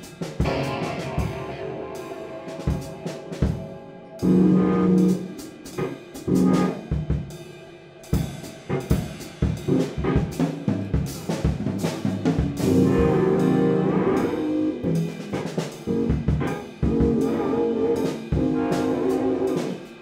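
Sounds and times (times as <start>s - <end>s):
drum kit on snare and cymbals: 0.0s - 20.0s
saxophones holding low chords: 0.0s - 20.0s.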